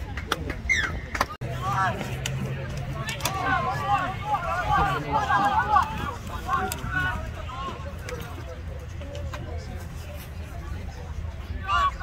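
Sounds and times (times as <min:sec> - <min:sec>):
people shouting and calling: 0:01.3 - 0:08.5, 0:11.4 - 0:12.0.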